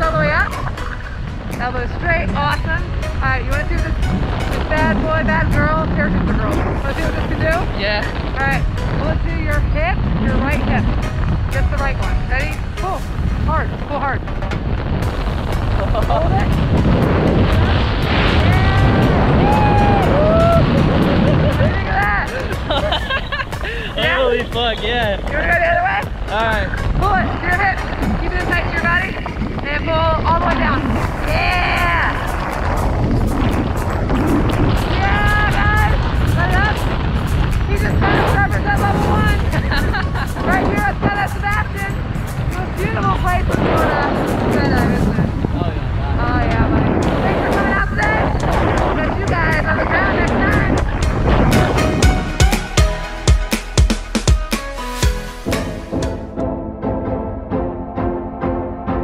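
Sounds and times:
wind rushing over microphone: 0:00.0 - 0:52.8
people whooping and laughing: 0:19.4 - 0:21.8, 0:22.4 - 0:24.0.

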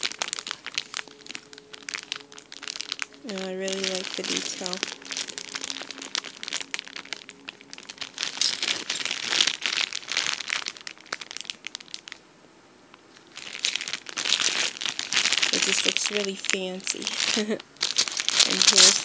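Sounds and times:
plastic packaging crinkling: 0:00.0 - 0:12.2, 0:12.9 - 0:19.0
plastic cutlery handled: 0:13.4 - 0:19.0.

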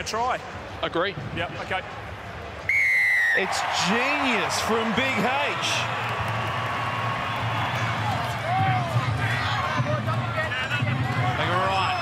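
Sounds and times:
stadium crowd cheering and clapping: 0:02.7 - 0:12.0.

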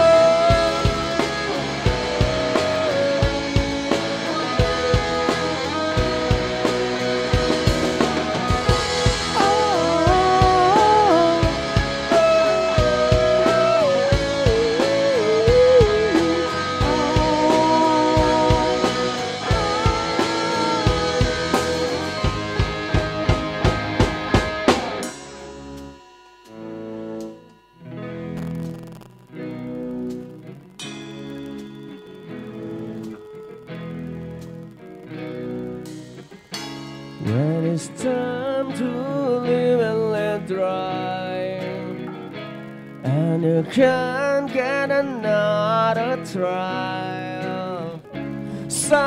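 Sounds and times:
electric guitar lead bending: 0:00.0 - 0:49.0
live rock band playing: 0:00.0 - 0:49.0.

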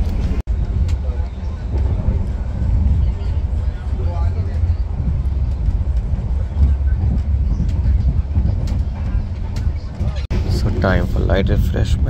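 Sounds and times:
train rumbling inside carriage: 0:00.0 - 0:12.0.

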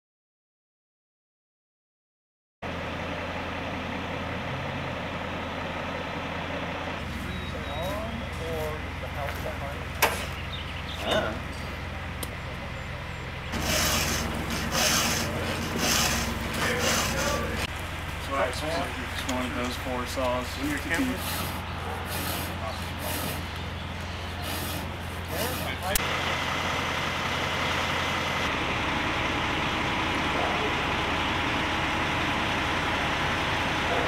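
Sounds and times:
truck engine idling: 0:02.6 - 0:34.0
voices: 0:06.5 - 0:26.1, 0:30.1 - 0:31.3, 0:33.0 - 0:34.0
short noisy bursts: 0:13.5 - 0:17.6
tools clanking: 0:13.5 - 0:17.7.

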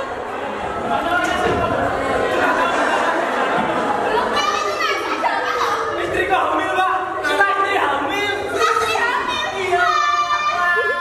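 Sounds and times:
actors speaking loudly: 0:00.0 - 0:11.0.

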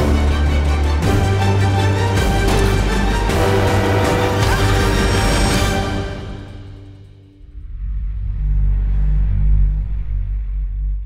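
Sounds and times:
deep bass rumble: 0:00.0 - 0:11.0.

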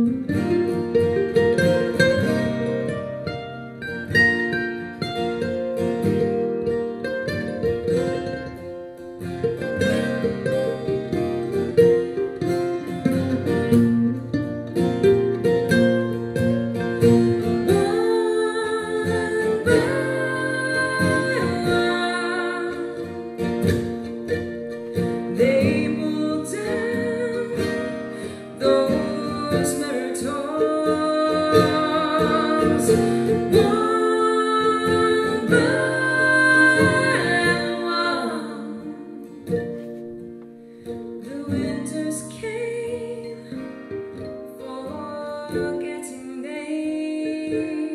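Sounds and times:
acoustic guitar: 0:00.0 - 0:47.9
mandolin: 0:00.0 - 0:47.9.

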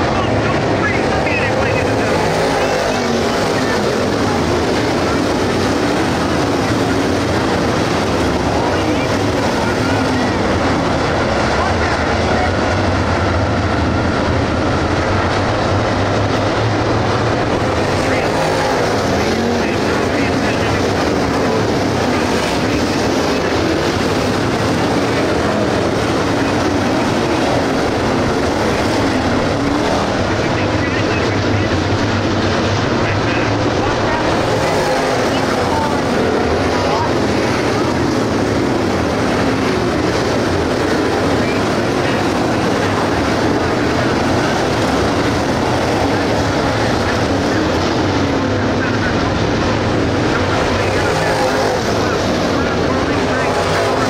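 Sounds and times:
race car engines running: 0:00.0 - 0:54.0.

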